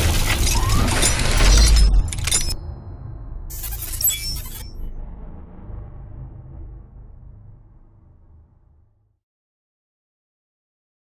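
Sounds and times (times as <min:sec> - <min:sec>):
glassy noise rush: 0:03.5 - 0:04.9
deep bass: 0:04.6 - 0:09.2.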